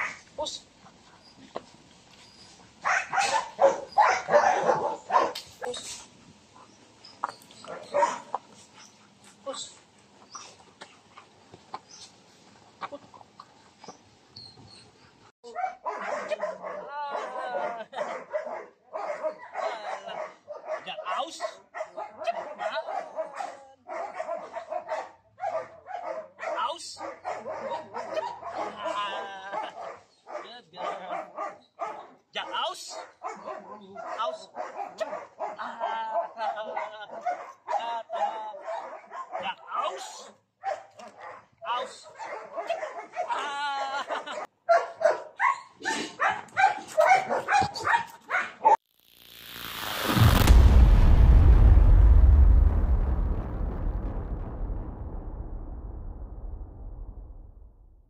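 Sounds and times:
puppy barking and yipping: 2.8s - 5.8s, 7.2s - 8.4s, 15.5s - 32.2s, 33.0s - 39.5s, 40.6s - 43.4s, 44.2s - 48.8s.

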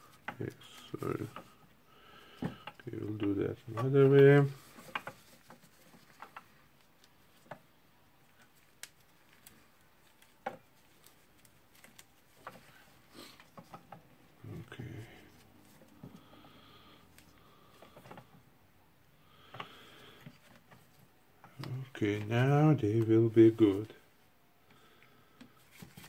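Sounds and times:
plastic parts clicking and tapping: 2.4s - 6.5s.

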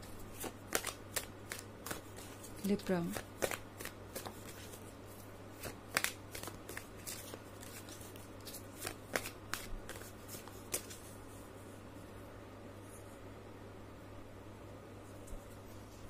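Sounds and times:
cards being shuffled: 0.0s - 11.2s
faint steady hum: 0.0s - 16.0s.

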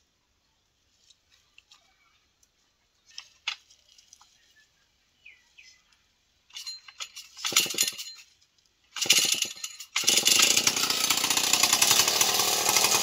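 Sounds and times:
bird chirps: 4.3s - 6.0s
tool handling clicks and knocks: 6.5s - 8.5s.

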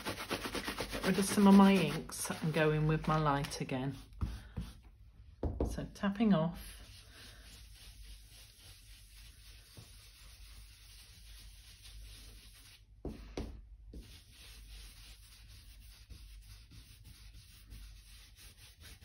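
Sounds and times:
brush scrubbing on card: 0.0s - 4.9s, 6.6s - 13.2s, 13.9s - 19.0s.

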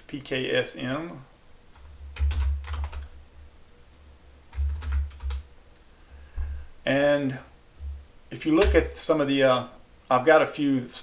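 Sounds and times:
keyboard typing: 1.7s - 3.1s, 3.9s - 5.4s, 8.6s - 8.9s.

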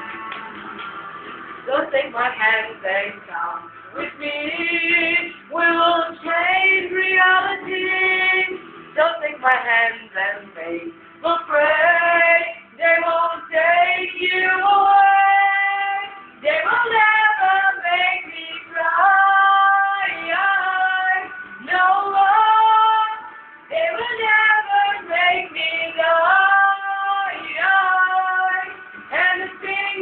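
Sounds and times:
music: 0.0s - 30.0s.

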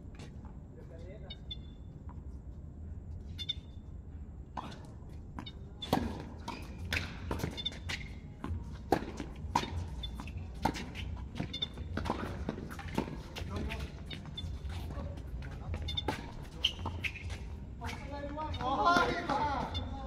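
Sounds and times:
tennis balls struck by rackets: 4.6s - 14.2s, 18.6s - 19.8s
tennis balls bouncing on hard court: 4.6s - 19.8s.

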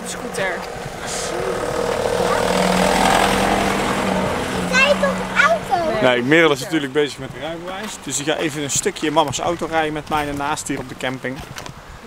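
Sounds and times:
van engine driving past: 0.0s - 10.8s.

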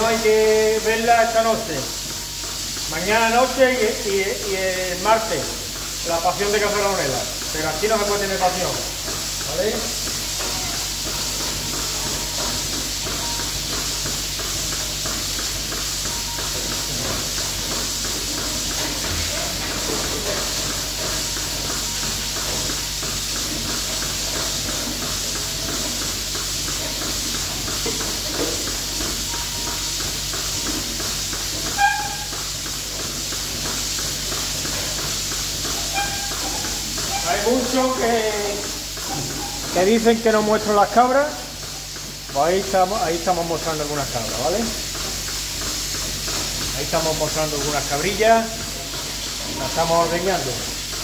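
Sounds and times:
milking machine vacuum hiss: 0.0s - 51.0s.

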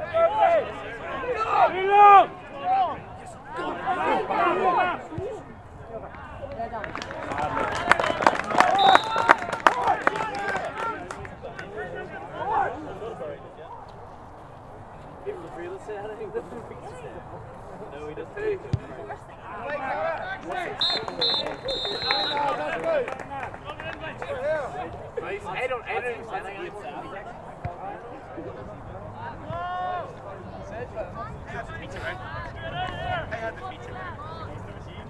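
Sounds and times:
referee's whistle blasts: 8.8s - 9.4s, 20.8s - 22.6s.

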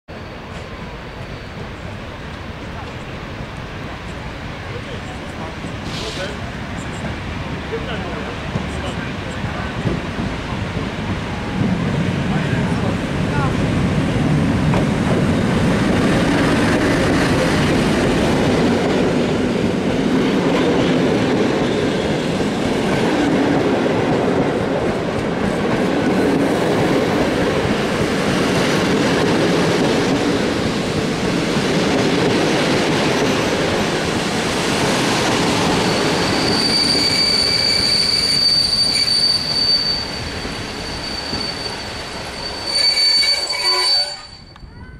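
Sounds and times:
train brakes squealing: 0.1s - 2.3s, 5.0s - 7.1s, 21.6s - 22.6s, 35.3s - 44.9s
train wheels rumbling on rails: 0.1s - 44.9s.

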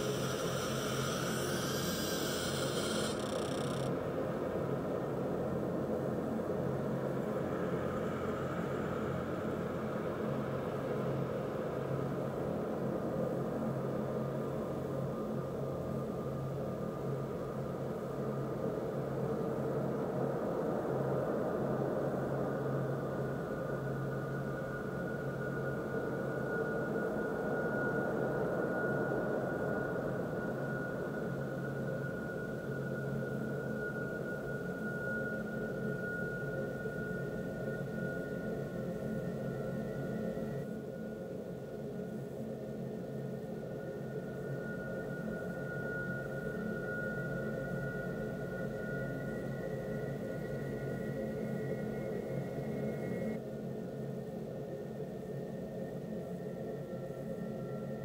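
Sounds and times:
noisy drone: 0.0s - 3.9s
thin high tone: 0.0s - 3.9s.

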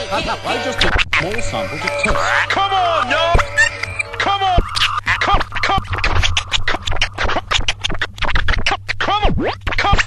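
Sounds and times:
turntable scratching: 0.0s - 10.0s.

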